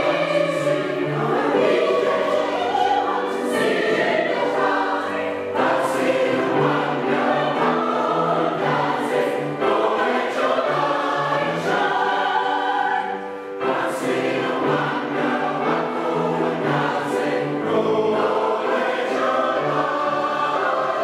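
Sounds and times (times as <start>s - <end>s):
choir singing in parts: 0.0s - 21.0s.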